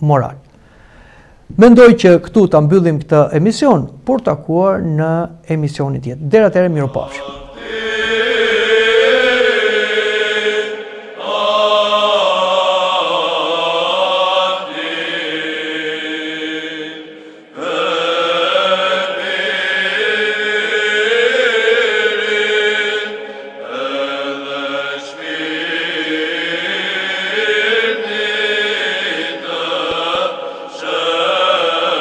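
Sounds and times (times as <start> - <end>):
church chant: 6.7 - 32.0.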